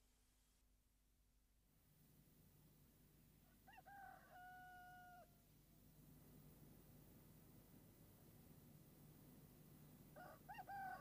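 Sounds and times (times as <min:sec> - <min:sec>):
rooster crowing: 0:03.6 - 0:05.3, 0:10.2 - 0:11.0.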